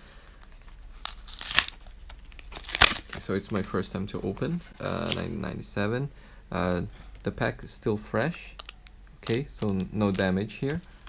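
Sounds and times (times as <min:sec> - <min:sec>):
faint plastic crinkling: 0:00.0 - 0:05.6, 0:06.8 - 0:11.0
plastic wrapper ripping: 0:00.4 - 0:03.8, 0:08.2 - 0:10.8.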